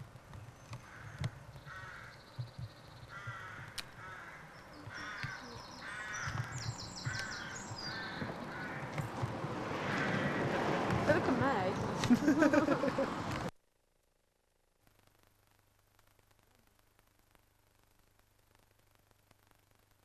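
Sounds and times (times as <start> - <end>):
thin high bird calls: 0.4 - 8.9
short repeated bird calls: 0.7 - 8.9.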